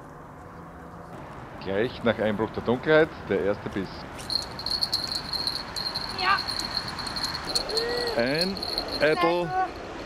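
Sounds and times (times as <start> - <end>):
fishing reel whirring: 4.3 - 9.1.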